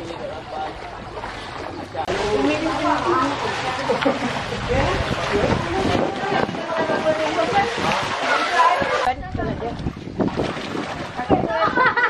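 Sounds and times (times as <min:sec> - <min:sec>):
floodwater sloshing: 0:00.0 - 0:12.0
wind noise on microphone: 0:04.4 - 0:12.0
children's voices: 0:04.7 - 0:09.5.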